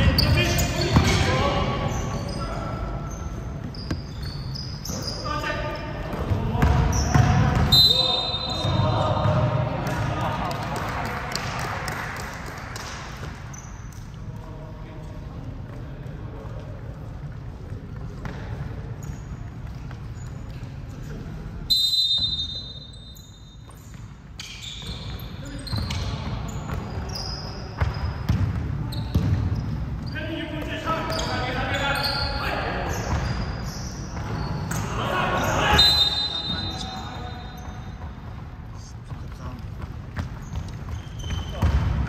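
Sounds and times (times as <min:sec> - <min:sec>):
referee's whistle: 0:07.0 - 0:08.8, 0:21.7 - 0:23.6, 0:35.6 - 0:37.8
players calling out: 0:30.1 - 0:37.8
basketball bouncing on hardwood: 0:39.8 - 0:42.0.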